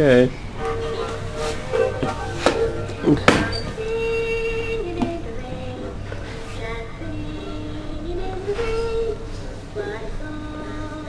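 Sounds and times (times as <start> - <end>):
musical toy playing a tune: 0.6 - 3.1.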